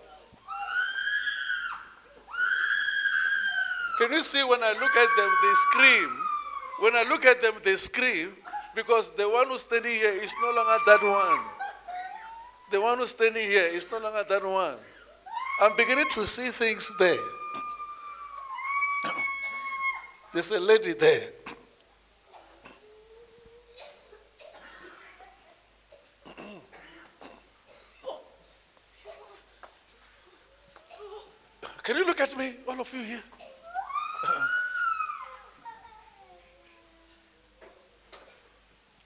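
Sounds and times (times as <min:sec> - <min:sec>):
low wailing cries: 0:00.0 - 0:07.2, 0:10.2 - 0:12.8, 0:15.1 - 0:20.3, 0:33.6 - 0:35.8
person screaming: 0:04.8 - 0:06.8, 0:33.9 - 0:35.3.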